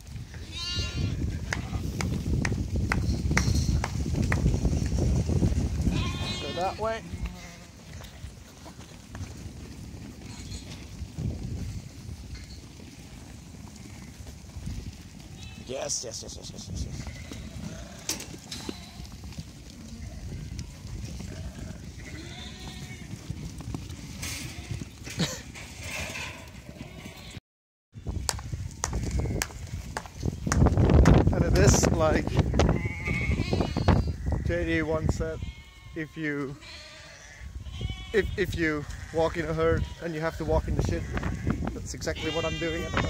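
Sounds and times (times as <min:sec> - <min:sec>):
sheep hooves trampling: 0:00.0 - 0:27.3, 0:28.0 - 0:43.0
wind rumbling on microphone: 0:00.0 - 0:27.4, 0:28.0 - 0:43.0
sheep bleating: 0:00.4 - 0:01.9, 0:05.8 - 0:08.1, 0:19.9 - 0:23.1, 0:32.4 - 0:43.0.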